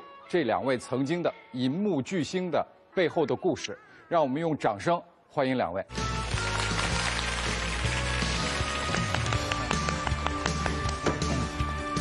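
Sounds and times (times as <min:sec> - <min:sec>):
music: 0:00.0 - 0:03.0, 0:05.8 - 0:12.0
audience applauding: 0:06.0 - 0:11.4.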